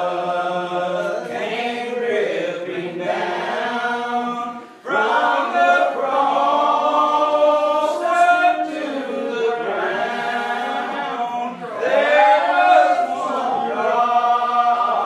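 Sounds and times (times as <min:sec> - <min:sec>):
unaccompanied hymn singing: 0:00.0 - 0:15.0.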